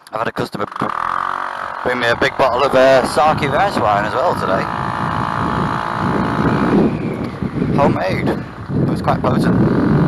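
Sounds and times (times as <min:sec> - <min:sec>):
scooter engine running: 0:00.6 - 0:10.0
wind rumbling on microphone: 0:00.8 - 0:10.0.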